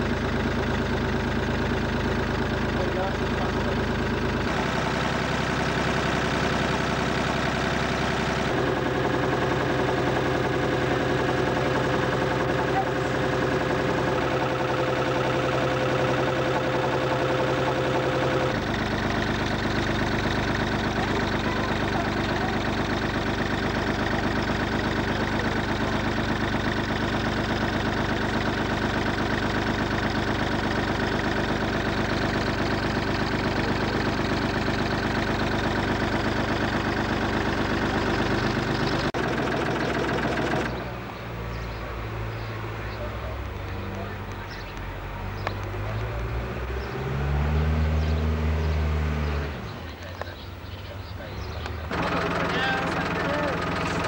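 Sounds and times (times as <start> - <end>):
boat engine droning: 0.0 - 54.0.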